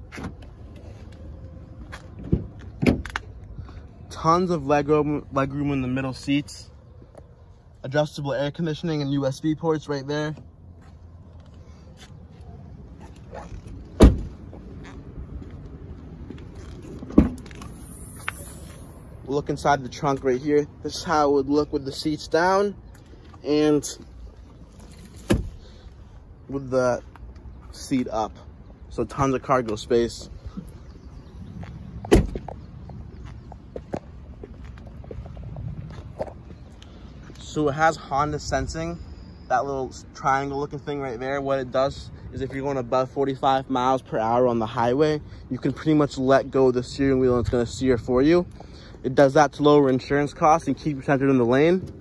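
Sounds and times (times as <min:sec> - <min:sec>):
footsteps on asphalt: 0:00.0 - 0:03.9, 0:10.3 - 0:18.8, 0:27.0 - 0:37.5
car door shutting: 0:13.4 - 0:15.0, 0:16.8 - 0:18.4, 0:25.0 - 0:25.7, 0:32.0 - 0:32.5
car tailgate thump: 0:14.0 - 0:14.4, 0:17.1 - 0:17.5, 0:25.2 - 0:25.6, 0:32.1 - 0:32.5.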